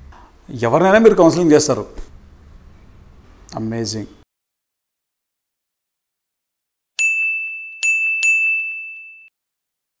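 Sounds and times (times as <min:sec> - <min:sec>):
bright ding sound effects: 0:07.0 - 0:09.3.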